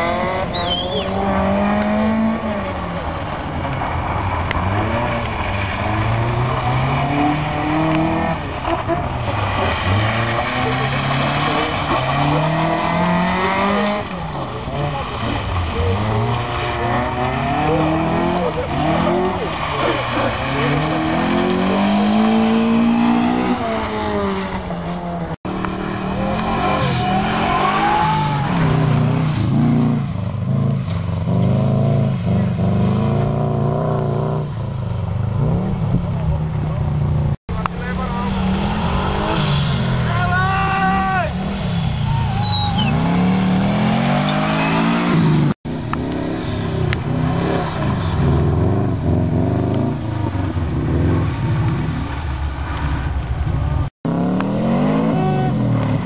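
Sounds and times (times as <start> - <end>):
rally car engine revving hard: 0.0 - 34.6, 37.6 - 40.4, 42.7 - 56.0.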